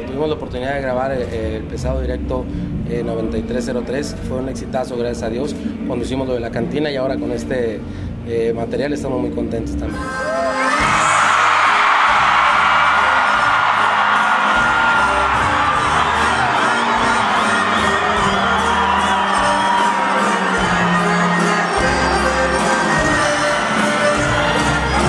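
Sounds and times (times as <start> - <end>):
crowd cheering and whooping: 10.0 - 25.0
live band with accordion and bass: 20.1 - 25.0.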